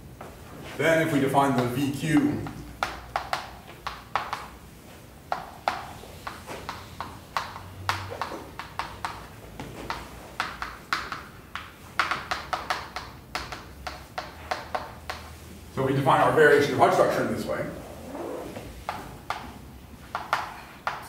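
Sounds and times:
chalk tapping on blackboard: 1.5s - 4.6s, 5.3s - 15.4s, 20.1s - 21.0s.

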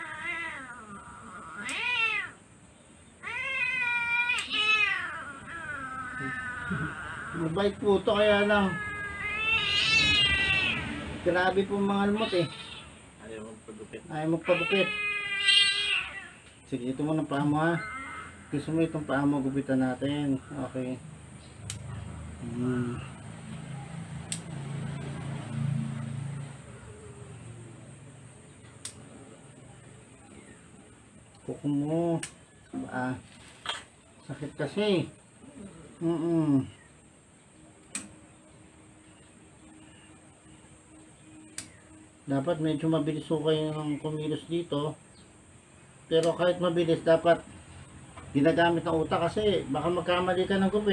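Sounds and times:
cat yowling: 0.0s - 2.4s, 3.2s - 13.2s, 14.3s - 16.6s, 17.6s - 18.8s
nail clipper clicking: 21.7s - 21.9s, 24.3s - 24.5s, 37.8s - 38.1s.

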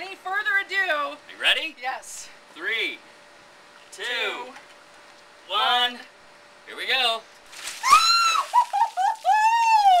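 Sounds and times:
person shrieking: 7.8s - 10.0s.

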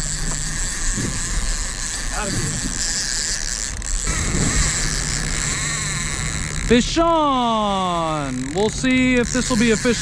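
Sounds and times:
fishing reel clicker ratcheting: 0.0s - 10.0s.

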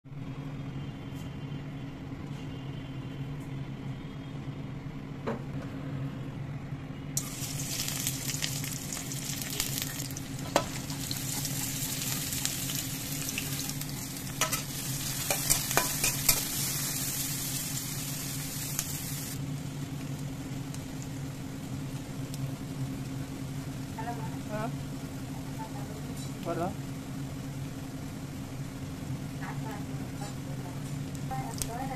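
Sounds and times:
food sizzling in hot oil: 7.2s - 31.9s.

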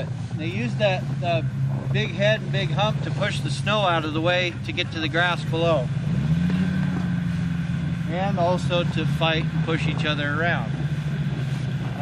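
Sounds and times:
snowmobile engine idling: 0.0s - 12.0s.

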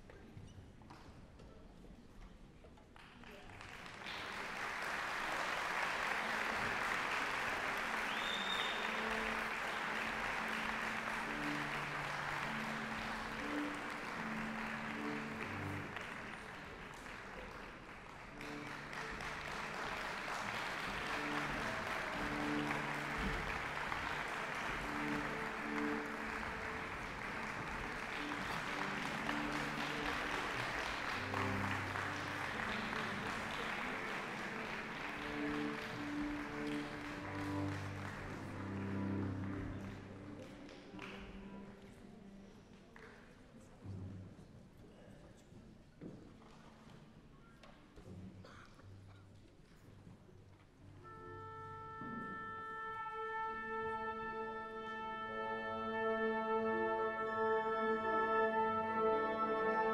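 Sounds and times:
audience applause: 3.1s - 41.2s
orchestra playing held notes: 4.9s - 17.2s, 18.4s - 41.5s, 50.9s - 59.9s.

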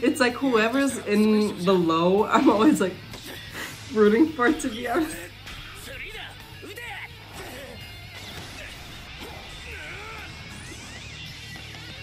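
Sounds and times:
anime background music: 0.0s - 12.0s.

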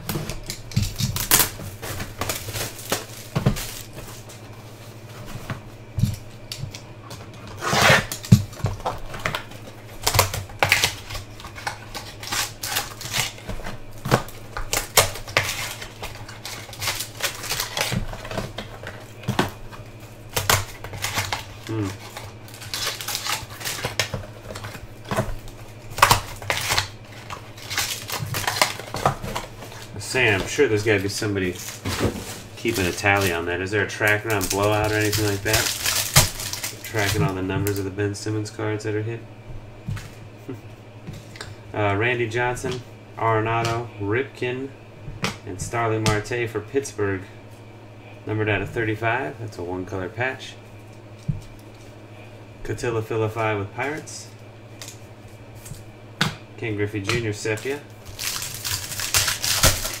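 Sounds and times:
cardboard and packaging rustling: 0.0s - 37.9s, 57.2s - 60.0s
steady low hum: 0.0s - 60.0s
cardboard scraping: 7.2s - 9.4s, 26.0s - 33.4s.

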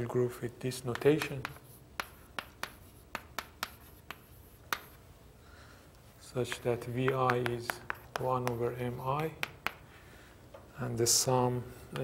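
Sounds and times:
chalk tapping on blackboard: 0.9s - 5.0s, 6.4s - 9.9s.

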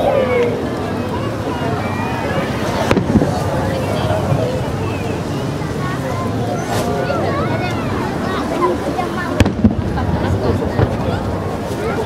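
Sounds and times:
crowd chattering: 0.0s - 12.0s
firework bangs: 2.7s - 4.6s, 9.3s - 11.7s.

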